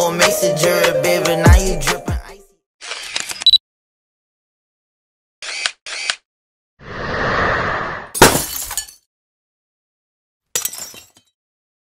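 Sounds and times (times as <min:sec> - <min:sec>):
glass breaking: 0:08.2 - 0:09.0, 0:10.6 - 0:11.4.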